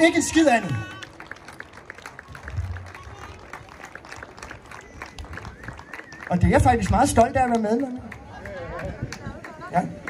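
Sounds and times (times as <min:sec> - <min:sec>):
audience clapping: 0:00.1 - 0:10.0.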